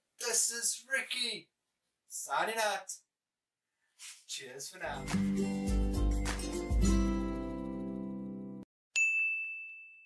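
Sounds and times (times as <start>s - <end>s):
high bell-like ding: 9.0s - 10.0s.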